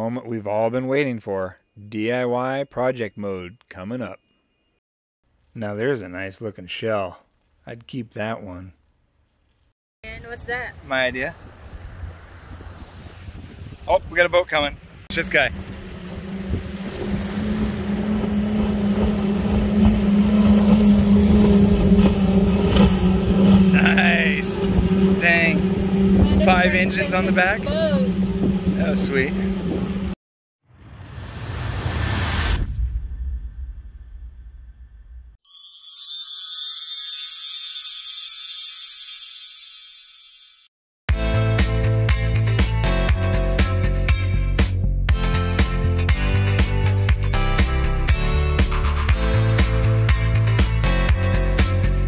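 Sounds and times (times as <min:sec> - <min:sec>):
outboard engines droning: 0:15.1 - 0:30.2
high shimmering chime: 0:35.4 - 0:40.7.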